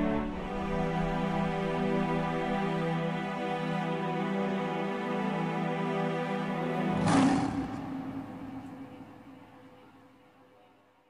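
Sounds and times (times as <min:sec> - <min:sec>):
background music: 0:00.0 - 0:11.0
noisy burst: 0:06.9 - 0:09.9
low hum: 0:06.9 - 0:10.3.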